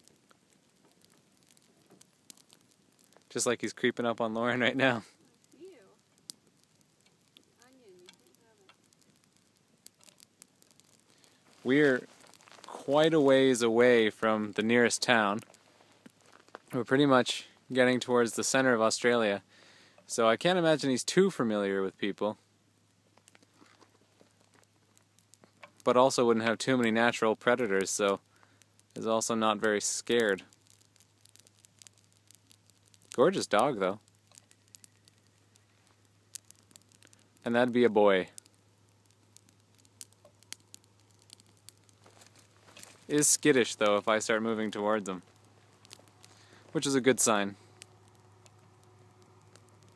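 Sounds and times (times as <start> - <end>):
faint clicks and crackles: 0.0 - 49.9
faint hiss: 0.0 - 49.9
low steady hum: 0.0 - 49.9.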